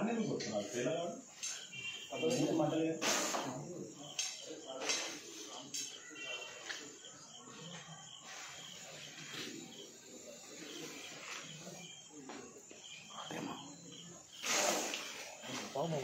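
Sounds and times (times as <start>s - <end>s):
low voices murmuring: 0.0s - 16.0s
short hissy noises: 3.0s - 3.5s, 14.4s - 15.3s.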